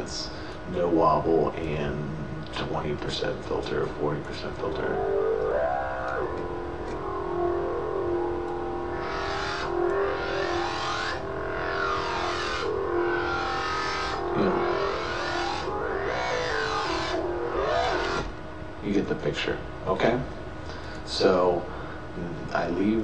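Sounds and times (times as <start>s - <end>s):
synth bass filter sweep: 3.6s - 18.9s.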